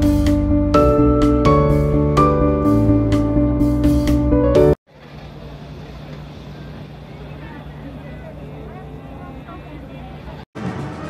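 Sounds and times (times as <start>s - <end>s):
faint chatter of people: 5.0s - 11.0s.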